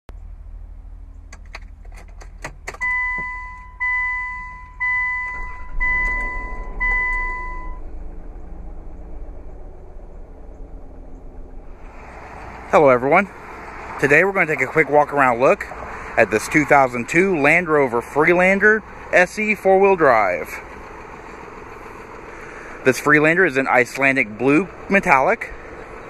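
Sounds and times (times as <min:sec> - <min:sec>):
steady low cabin hum: 0:00.1 - 0:15.4
dashboard warning chime: 0:02.7 - 0:07.8.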